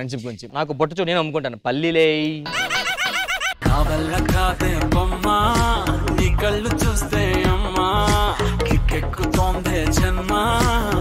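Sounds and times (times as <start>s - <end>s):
person laughing rhythmically: 2.4s - 4.0s
loud music: 3.6s - 11.0s.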